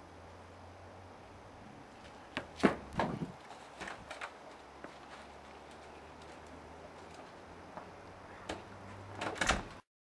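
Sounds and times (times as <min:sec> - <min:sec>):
faint steady hum: 0:00.0 - 0:09.8
door closing with knocks: 0:09.2 - 0:09.8.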